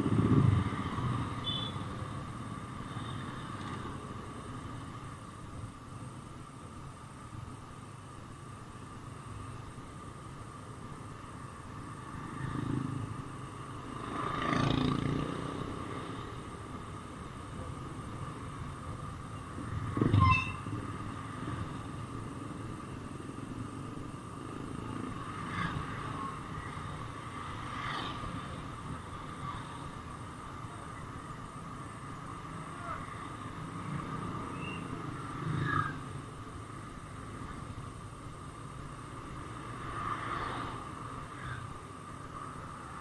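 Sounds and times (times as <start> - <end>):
street traffic: 0.0 - 43.0.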